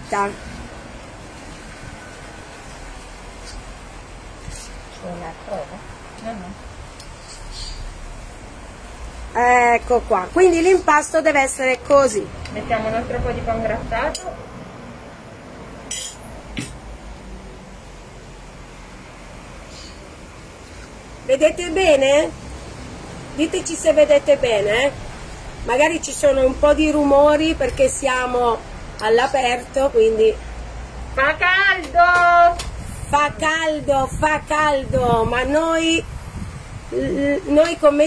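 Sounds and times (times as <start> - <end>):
even outdoor hiss: 0.0 - 38.0
metal cutlery clinking against bowl: 15.9 - 16.2.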